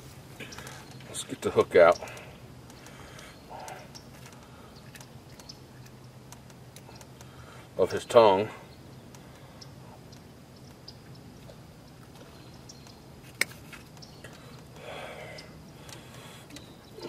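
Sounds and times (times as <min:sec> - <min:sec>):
small ticks from hook and line: 0:00.5 - 0:07.5.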